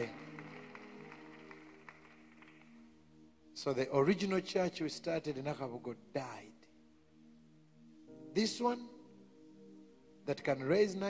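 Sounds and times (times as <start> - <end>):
soft background music chords: 0.0 - 11.0.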